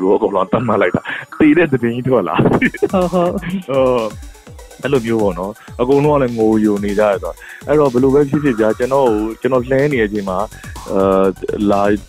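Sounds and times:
man talking over a phone line: 0.0s - 4.1s, 4.8s - 12.0s
background music: 0.0s - 12.0s.

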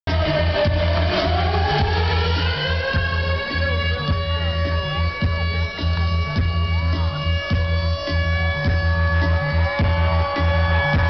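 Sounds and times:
pulsing bass note: 0.1s - 11.0s.

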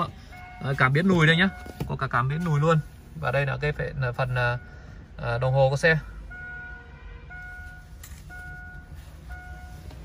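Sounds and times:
car warning beeper: 0.0s - 10.0s.

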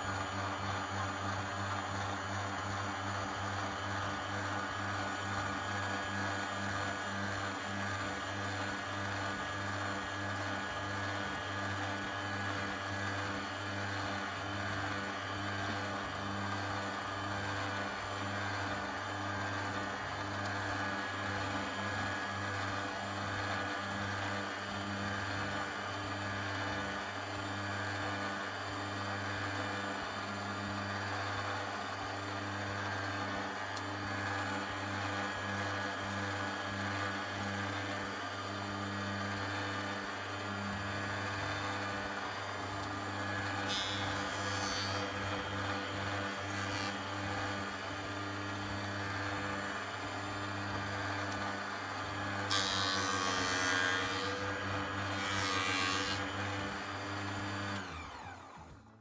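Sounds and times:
thickness planer motor humming: 0.0s - 59.0s.

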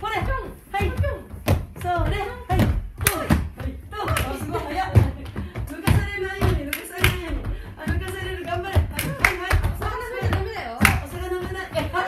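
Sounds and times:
feet thudding on wooden floor: 0.0s - 12.0s.

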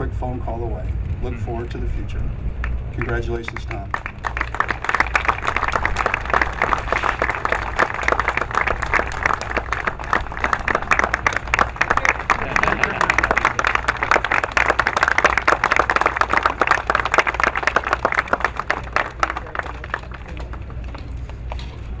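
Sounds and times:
low steady hum: 0.0s - 22.0s
audience applauding: 3.0s - 21.6s.

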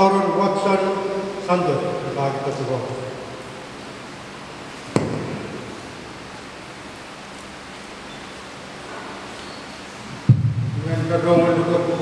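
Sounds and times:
room noise hiss: 0.0s - 12.0s
sharp thump with echo: 4.9s - 5.8s, 10.3s - 10.7s.

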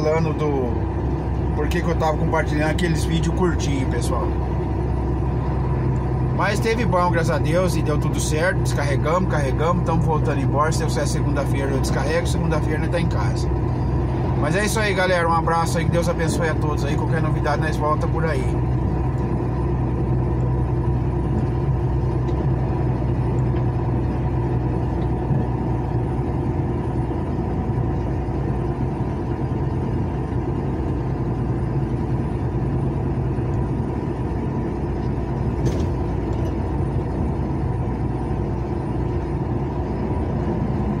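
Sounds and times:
road noise: 0.0s - 41.0s
truck engine drone: 0.0s - 41.0s.

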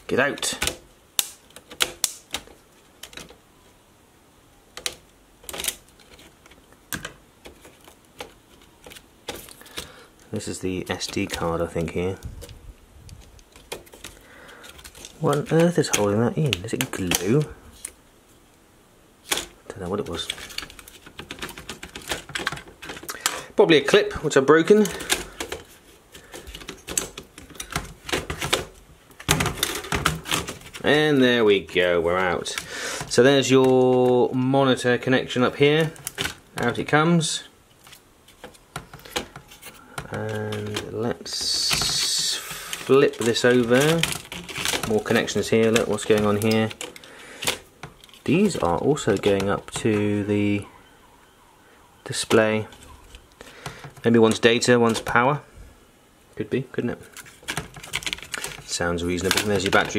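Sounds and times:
small plastic clicks and knocks: 19.3s - 23.4s.

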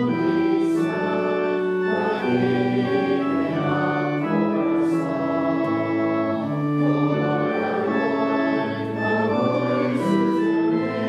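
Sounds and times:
church organ playing hymn: 0.0s - 11.0s
congregation singing: 0.0s - 11.0s.

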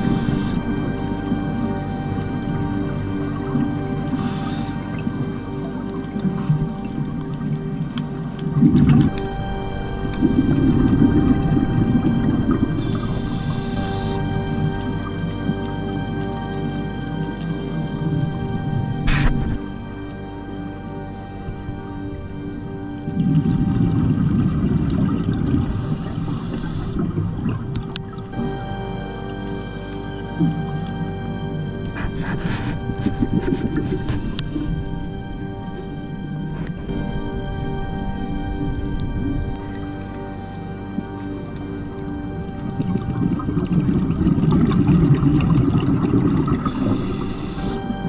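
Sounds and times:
breath hissing through regulator: 0.0s - 1.4s, 4.0s - 6.8s, 11.1s - 14.6s, 19.0s - 19.6s, 25.5s - 27.3s, 31.9s - 35.0s, 46.1s - 48.0s
background music: 0.0s - 48.0s
underwater bubbling and rumbling: 0.0s - 48.0s.

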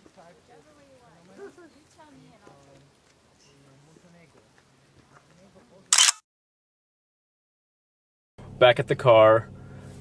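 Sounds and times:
camera shutter click: 5.9s - 6.2s.

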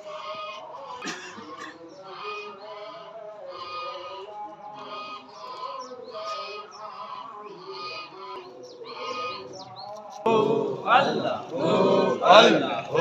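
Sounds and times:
distant men reciting together: 0.0s - 13.0s.

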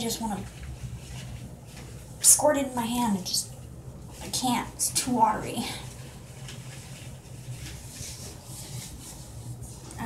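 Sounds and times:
gloved hands rustling in wet hair: 0.0s - 2.4s, 5.4s - 10.0s
low steady hum: 0.0s - 10.0s.

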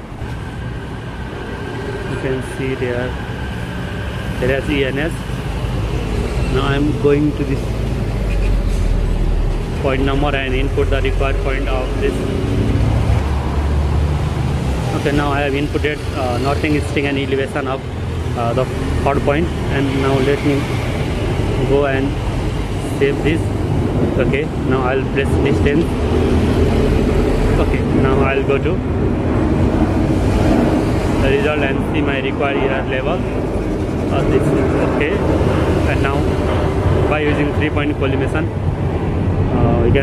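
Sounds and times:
man talking: 2.1s - 3.2s, 4.4s - 5.2s, 6.5s - 7.7s, 9.8s - 12.3s, 14.9s - 17.8s, 18.4s - 20.7s, 21.6s - 22.2s, 22.8s - 23.5s, 24.2s - 26.0s, 27.6s - 28.8s, 31.2s - 33.3s, 34.1s - 35.2s, 35.8s - 36.3s, 37.1s - 38.6s, 39.5s - 40.0s.

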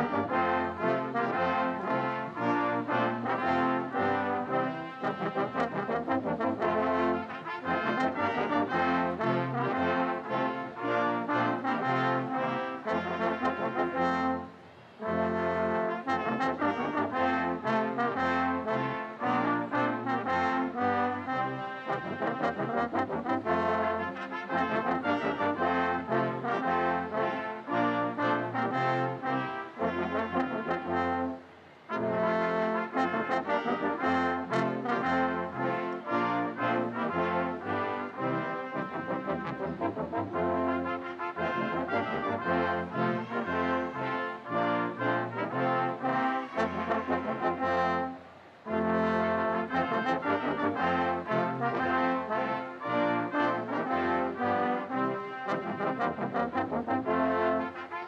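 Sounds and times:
brass ensemble playing: 0.0s - 58.0s.

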